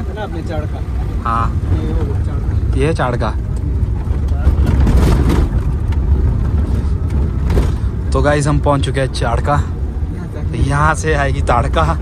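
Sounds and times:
car engine rumbling inside cabin: 0:00.0 - 0:12.0
road noise: 0:00.0 - 0:12.0.

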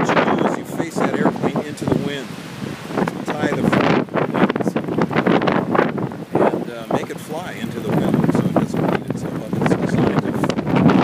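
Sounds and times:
gusty wind buffeting microphone: 0:00.0 - 0:11.0.

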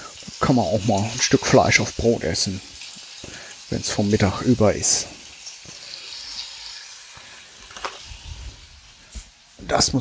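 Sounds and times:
meat sizzling in a frying pan: 0:00.0 - 0:10.0.

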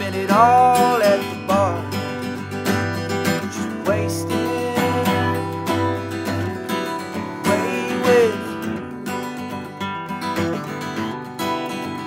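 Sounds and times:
man singing: 0:00.0 - 0:09.0
acoustic guitar strumming: 0:00.0 - 0:12.0.

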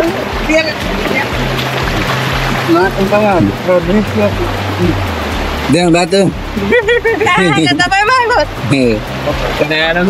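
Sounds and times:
mountain stream rushing: 0:00.0 - 0:10.0.

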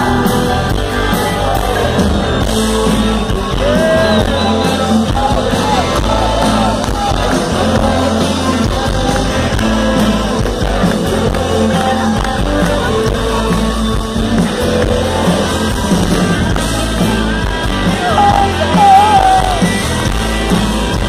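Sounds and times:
bass guitar: 0:00.0 - 0:21.0
drums: 0:00.0 - 0:21.0
electric guitars: 0:00.0 - 0:21.0
person singing: 0:00.0 - 0:21.0.

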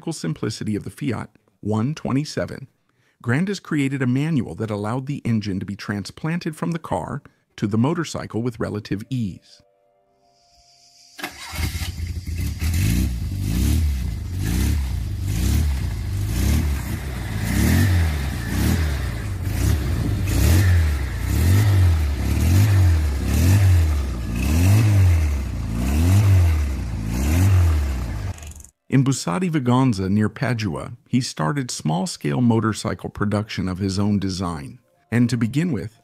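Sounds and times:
motorcycle engine revving: 0:11.4 - 0:28.7.

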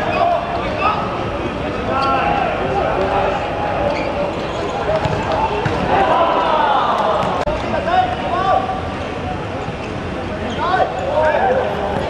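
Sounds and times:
players calling out: 0:01.8 - 0:08.6
shoes squeaking on court: 0:03.8 - 0:05.9.

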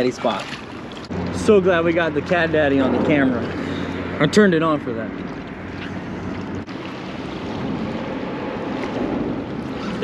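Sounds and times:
water lapping around a boat: 0:00.0 - 0:10.0
wind noise on microphone: 0:05.1 - 0:10.0.

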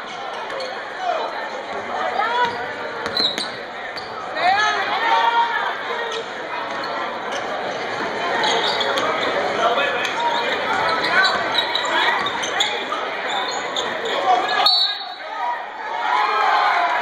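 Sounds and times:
spectators talking: 0:00.0 - 0:17.0.

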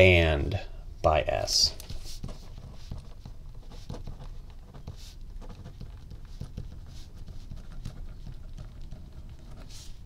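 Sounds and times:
pen scratching on paper: 0:01.9 - 0:10.0.

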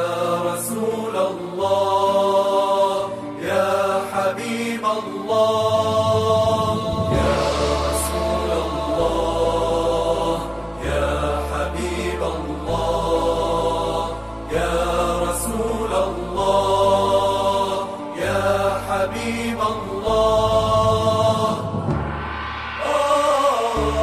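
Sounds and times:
devotional chanting: 0:00.0 - 0:24.0
low drone: 0:00.0 - 0:24.0.

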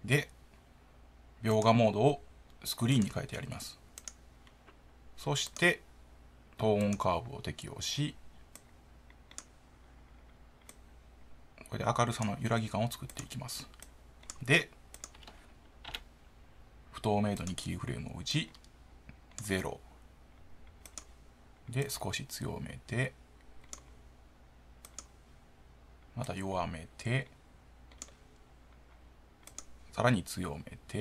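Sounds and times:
low room hiss: 0:00.0 - 0:31.0
computer mouse clicks: 0:03.9 - 0:04.8, 0:05.5 - 0:05.8, 0:06.8 - 0:07.7, 0:08.4 - 0:10.9, 0:12.2 - 0:16.1, 0:18.5 - 0:19.7, 0:20.4 - 0:21.9, 0:23.4 - 0:24.0, 0:24.8 - 0:25.2, 0:27.9 - 0:29.8.

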